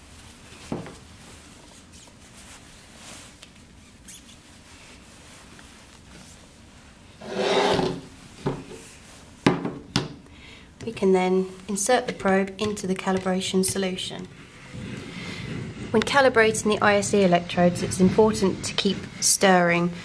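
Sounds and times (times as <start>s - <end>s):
loud rubbing rustle: 7.2s - 8.3s, 14.1s - 20.0s.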